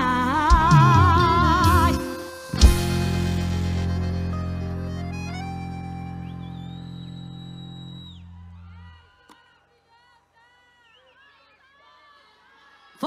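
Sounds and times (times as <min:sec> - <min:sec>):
live band closing chord: 0:00.4 - 0:07.9.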